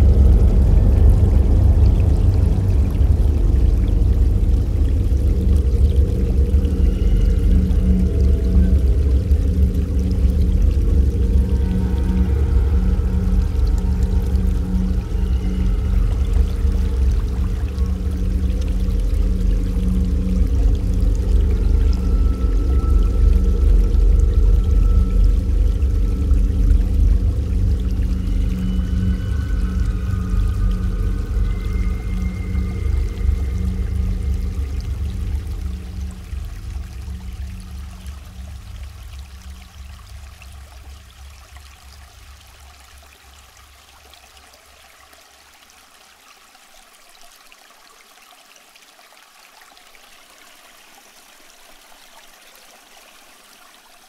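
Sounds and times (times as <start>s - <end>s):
slow ambient music: 0.0s - 45.6s.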